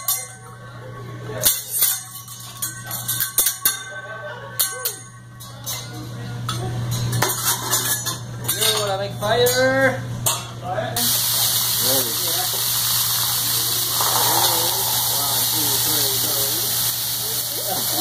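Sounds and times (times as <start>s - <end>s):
food sizzling on hot plate: 11.0s - 18.0s.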